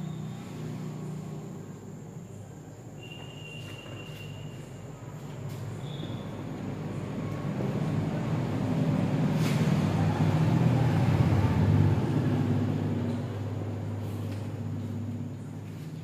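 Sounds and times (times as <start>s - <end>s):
passing motor vehicle rumble: 5.4s - 16.0s.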